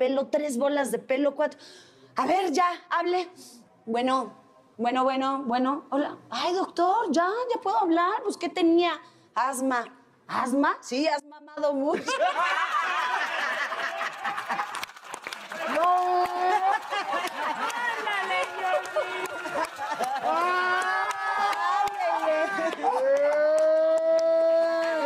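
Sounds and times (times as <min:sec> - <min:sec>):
hand claps: 0:14.0 - 0:25.0
man and woman laughing: 0:18.8 - 0:21.0.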